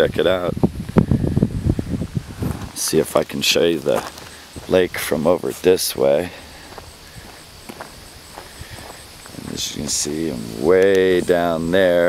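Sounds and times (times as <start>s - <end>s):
outdoor background hiss: 0.0s - 12.0s
footsteps on grass: 2.1s - 11.7s.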